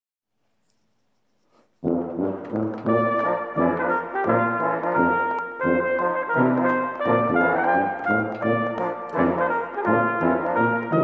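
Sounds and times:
brass quintet playing loud chord: 0:01.8 - 0:11.0.

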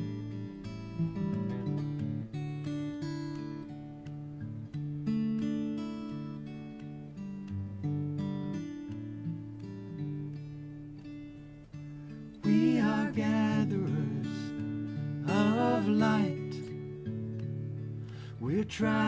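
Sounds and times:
acoustic guitar chords: 0:00.0 - 0:19.0.

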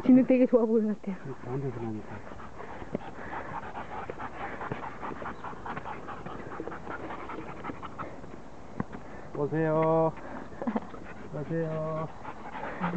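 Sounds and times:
dog panting quickly: 0:01.2 - 0:08.4, 0:09.6 - 0:12.9.

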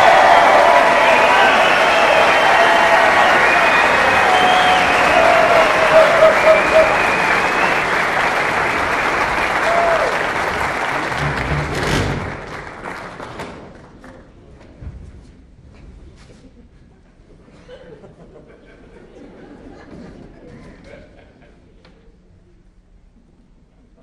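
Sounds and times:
pitched calls from audience: 0:00.0 - 0:11.6
audience applauding: 0:00.0 - 0:14.0.

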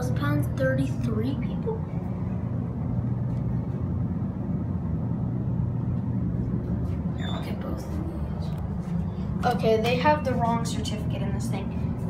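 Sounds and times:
hydraulic elevator humming: 0:00.0 - 0:11.3.

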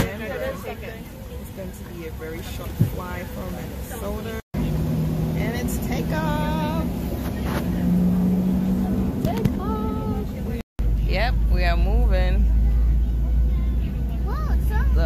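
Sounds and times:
voices: 0:00.0 - 0:15.0.

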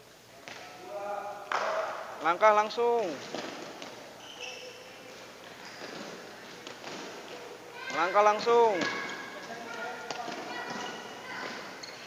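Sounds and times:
background chatter: 0:00.0 - 0:12.0
shoes squeaking on court mat: 0:03.2 - 0:08.1, 0:08.7 - 0:12.0.

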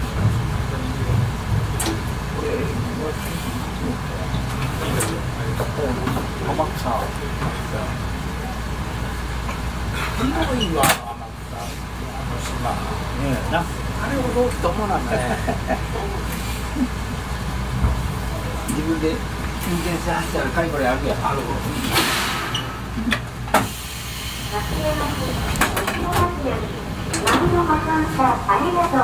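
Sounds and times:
electric train rumbling: 0:00.0 - 0:29.0
compressed air hissing: 0:23.5 - 0:25.6.

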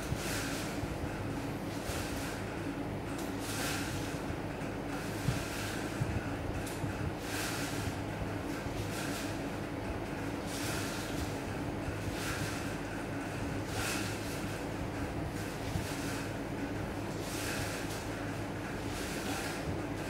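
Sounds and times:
steady low hum: 0:00.0 - 0:20.0
twine swishing over paper: 0:00.0 - 0:20.0.

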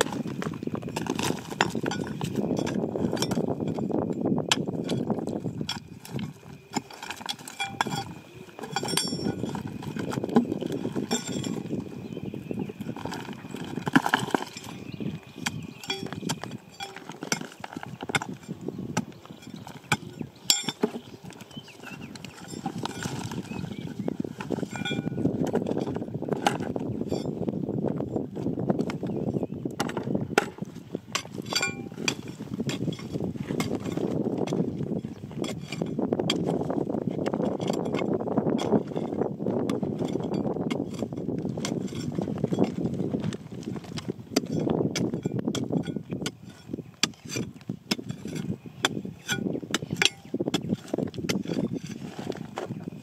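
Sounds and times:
gravel and soil scraping: 0:00.0 - 0:53.0
metal bar knocking on rock: 0:07.3 - 0:09.6, 0:15.8 - 0:17.5, 0:31.2 - 0:33.8.

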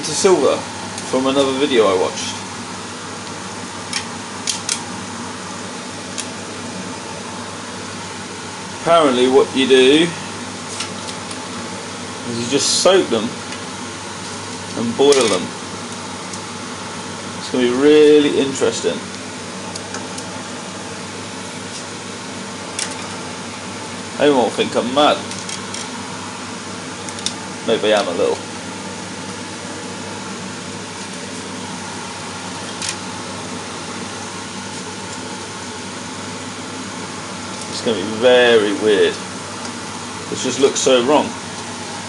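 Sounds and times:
steady background hum: 0:00.0 - 0:42.0.

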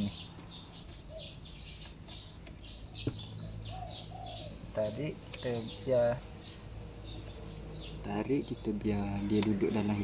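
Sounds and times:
small birds chirping: 0:00.0 - 0:10.0.

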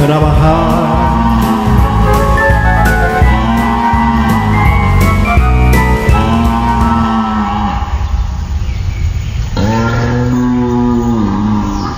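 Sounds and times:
cow mooing: 0:09.6 - 0:11.9.

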